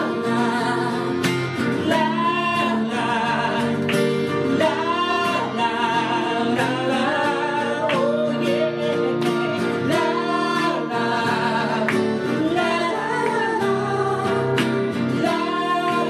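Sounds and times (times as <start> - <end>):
nylon-string classical guitar: 0.0 - 16.0
steel-string acoustic guitar: 0.0 - 16.0
two men singing: 0.0 - 16.0.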